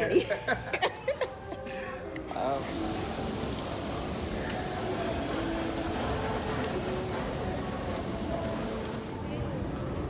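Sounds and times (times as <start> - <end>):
shopping mall hum: 0.0 - 10.0.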